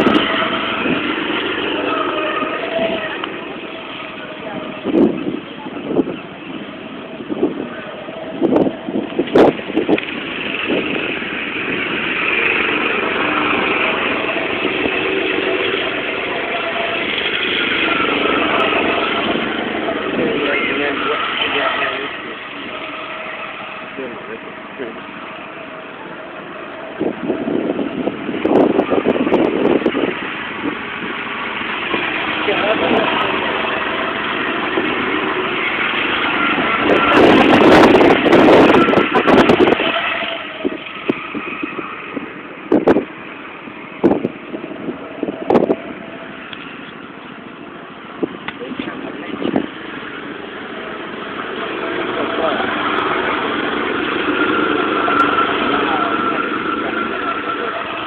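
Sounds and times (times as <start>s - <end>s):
go-kart engines droning: 0.0s - 58.0s
indistinct voices: 0.0s - 58.0s.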